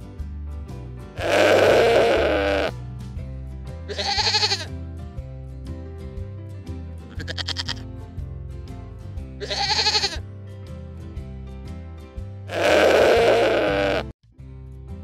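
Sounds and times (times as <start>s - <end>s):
background music: 0.0s - 15.0s
animal bleating: 1.2s - 2.7s, 3.9s - 4.7s, 7.1s - 7.9s, 9.4s - 10.2s, 12.5s - 14.1s.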